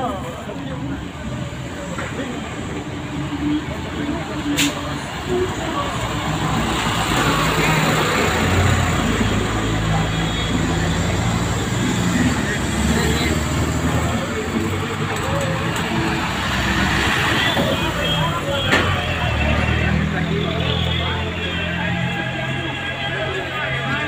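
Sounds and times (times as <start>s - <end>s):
bus engine humming: 0.0s - 24.0s
people talking: 0.0s - 24.0s
street traffic: 0.0s - 24.0s.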